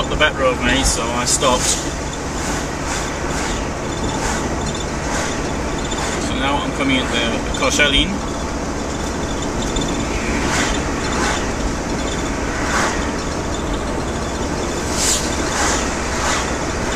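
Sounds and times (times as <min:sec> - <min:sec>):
van engine and road noise: 0:00.0 - 0:16.9
passing cars whooshing: 0:00.6 - 0:16.9.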